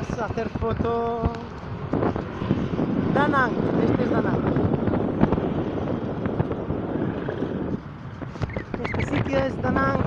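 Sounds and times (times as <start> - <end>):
road traffic passing: 0.0 - 10.0
wind buffeting microphone: 0.0 - 10.0.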